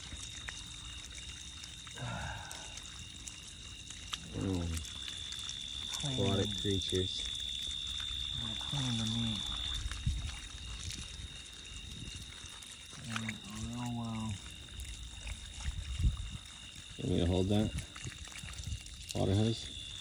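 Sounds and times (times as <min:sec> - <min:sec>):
water pouring from hose: 0:00.0 - 0:20.0.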